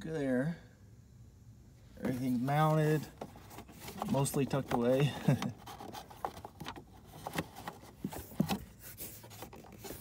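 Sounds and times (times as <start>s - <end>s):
hand rubbing plastic trim: 2.0s - 10.0s.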